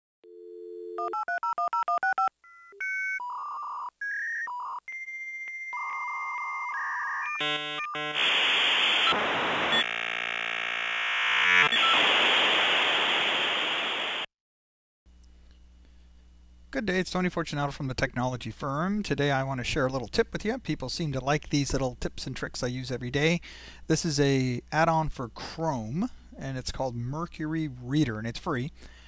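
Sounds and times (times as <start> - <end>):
dial tone: 0.2 - 8.2.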